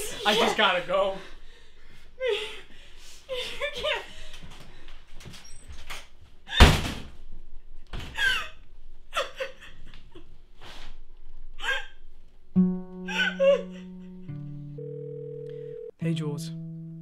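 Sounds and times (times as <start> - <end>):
woman sobbing: 3.3 - 4.3, 8.2 - 10.2, 13.1 - 14.2.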